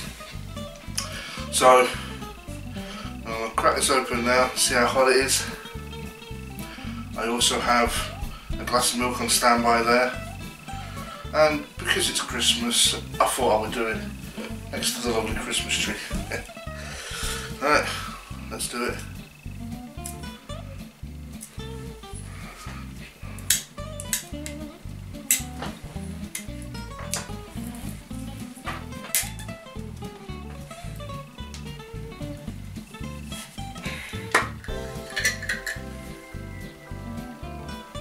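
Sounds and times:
background music with steady beat: 0.0 - 38.0.

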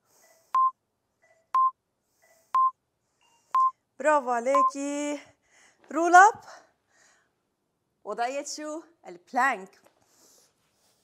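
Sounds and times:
short sharp timer beeps: 4.6 - 4.8.

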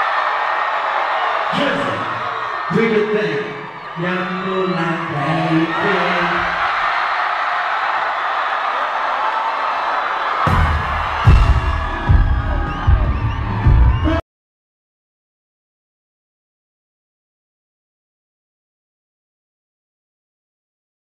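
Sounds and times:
crowd screaming and cheering: 0.0 - 14.2.

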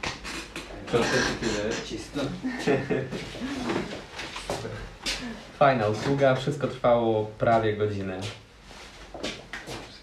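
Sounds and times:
man speaking: 0.7 - 2.9
soft voices: 0.7 - 5.6.

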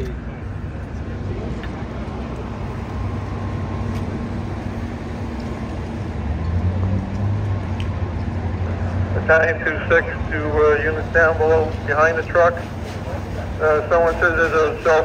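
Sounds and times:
engines idling: 0.0 - 15.0.

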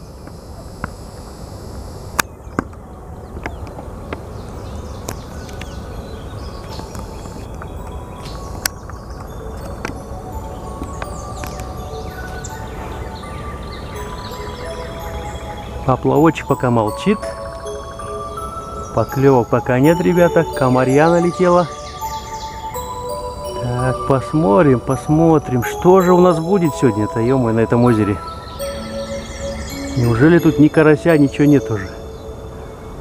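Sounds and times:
short high chirps: 11.2 - 32.6.

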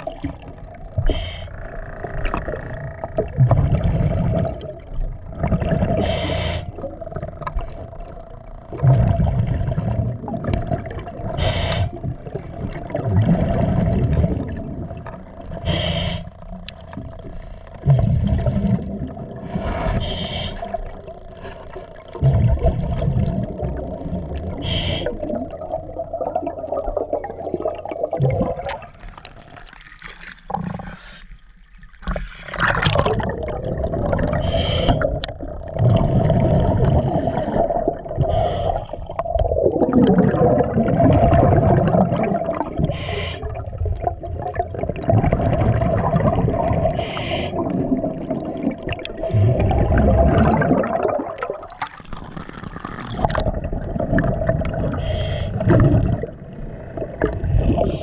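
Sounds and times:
steady hum: 0.0 - 29.2
exhaled bubbles rushing underwater: 0.0 - 58.0.

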